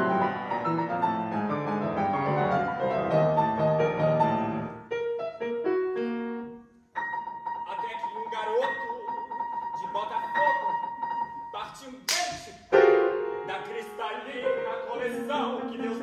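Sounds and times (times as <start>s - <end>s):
grand piano playing: 0.0s - 16.0s.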